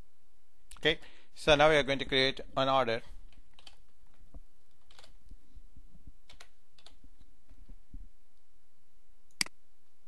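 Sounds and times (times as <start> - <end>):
computer keyboard typing: 3.3 - 3.8, 4.7 - 5.2, 6.3 - 7.0.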